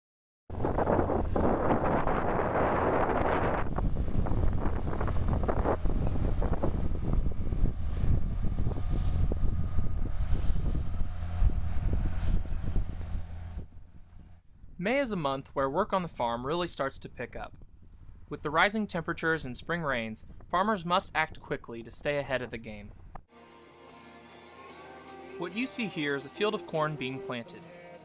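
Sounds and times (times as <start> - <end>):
wind buffeting microphone: 0.5 - 14.8, 17.2 - 18.4, 19.2 - 20.6
tractor diesel engine running: 4.0 - 14.6.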